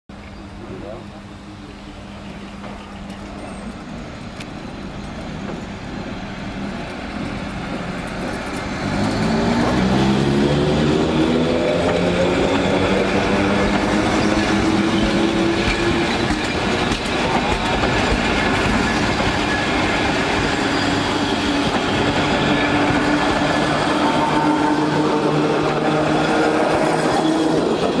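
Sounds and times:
train wheels rumbling on rails: 0.6s - 28.0s.

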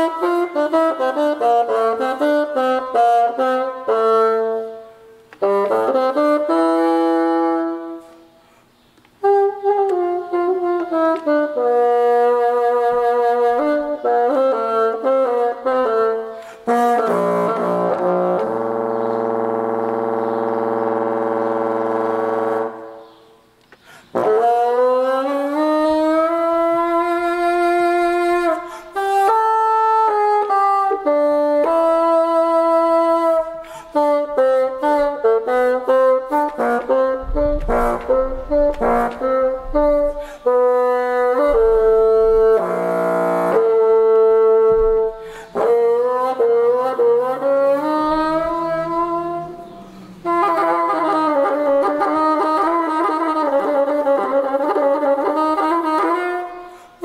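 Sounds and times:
solo bassoon playing: 0.0s - 8.4s, 9.2s - 23.3s, 24.1s - 57.0s.

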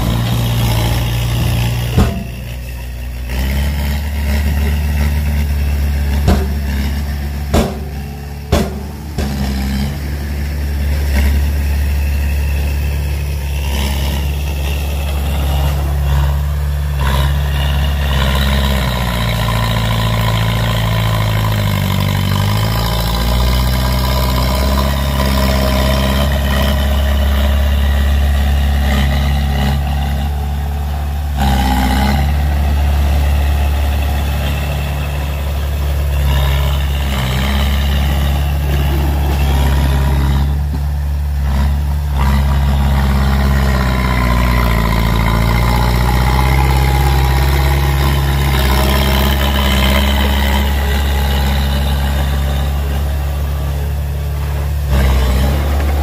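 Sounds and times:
heavy vehicle engine revving: 0.0s - 56.0s.

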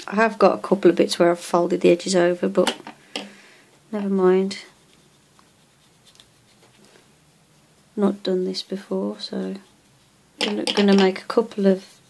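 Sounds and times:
soft rustling of latex: 3.6s - 12.0s.

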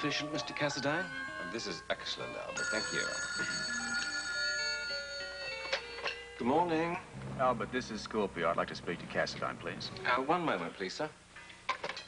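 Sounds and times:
soft background music: 0.0s - 11.7s
telephone bell ringing: 2.6s - 6.2s.

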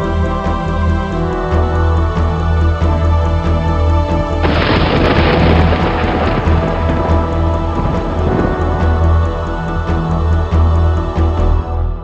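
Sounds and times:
background music with steady bass: 0.0s - 12.0s
thunderclap rumbling: 4.4s - 10.3s.

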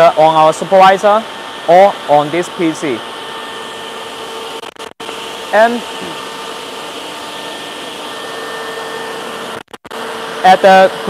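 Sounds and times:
machinery airy hum: 0.0s - 11.0s.

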